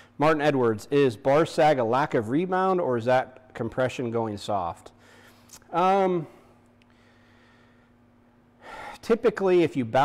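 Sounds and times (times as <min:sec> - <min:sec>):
faint steady hum: 0:00.0 - 0:10.0
sharp intake of breath: 0:08.6 - 0:09.0.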